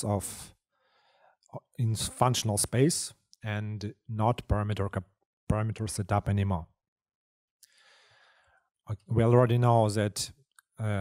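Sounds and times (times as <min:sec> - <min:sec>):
man speaking: 0:00.0 - 0:00.5, 0:01.6 - 0:06.7, 0:08.9 - 0:11.0
man breathing in: 0:00.7 - 0:01.4, 0:07.6 - 0:08.7.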